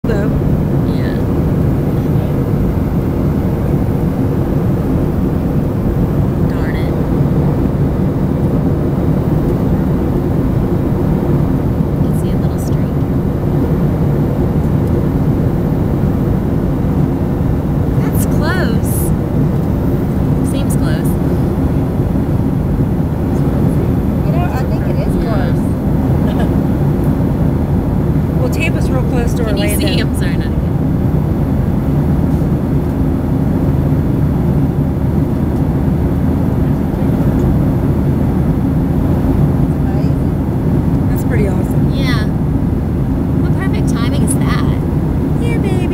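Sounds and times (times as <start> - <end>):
faint voices: 0.0 - 2.7, 11.9 - 13.2, 23.2 - 26.6, 28.4 - 30.6
airliner cabin drone: 0.0 - 45.9.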